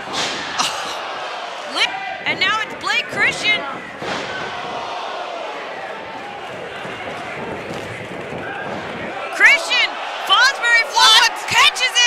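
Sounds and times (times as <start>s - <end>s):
crowd voices din: 0.0s - 12.0s.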